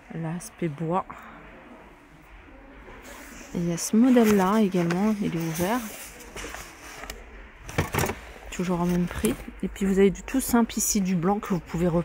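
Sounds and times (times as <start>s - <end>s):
shop background noise: 0.0s - 12.0s.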